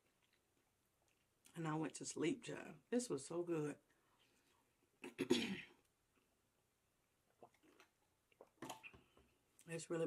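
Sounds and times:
woman clearing her throat: 5.0 - 5.8.

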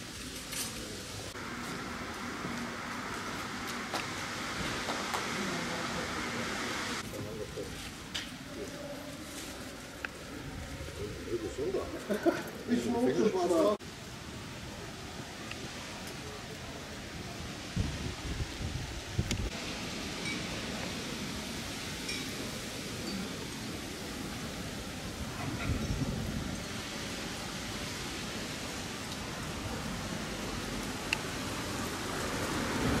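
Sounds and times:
outdoor street noise: 0.0 - 33.0
wind rumbling on microphone: 9.8 - 11.9, 16.9 - 20.0, 24.2 - 28.4.

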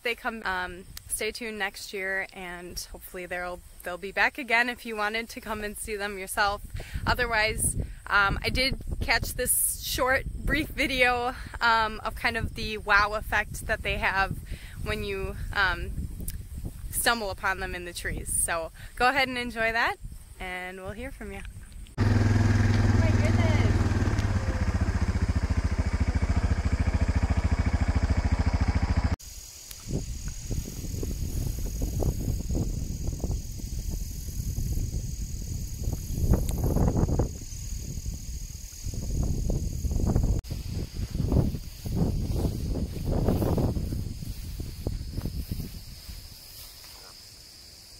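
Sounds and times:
crickets trilling: 0.1 - 47.9
uneven low rumbling: 21.9 - 29.2
loud steady low hum: 22.0 - 29.1.

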